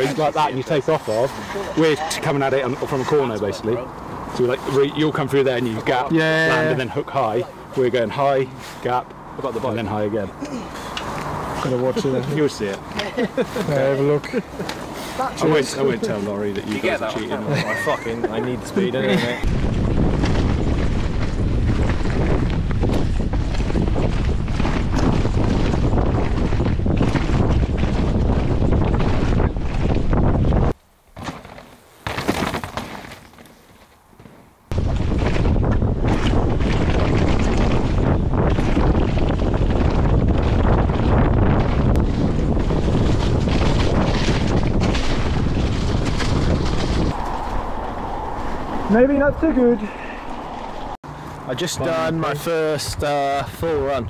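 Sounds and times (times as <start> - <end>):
bike tyres rattling on dirt: 0.0 - 54.0
wind buffeting microphone: 18.8 - 30.8, 34.6 - 51.0.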